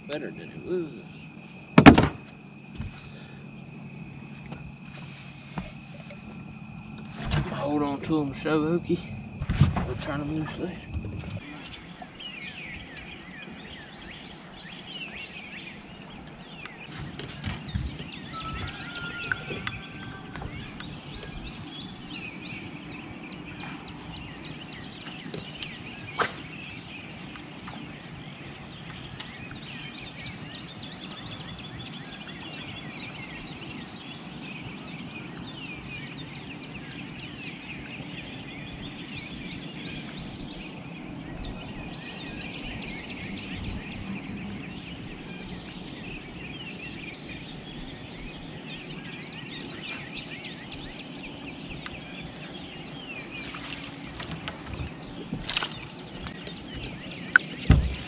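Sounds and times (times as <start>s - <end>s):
birds chirping in chorus: 0.0s - 58.0s
low steady hum: 0.0s - 58.0s.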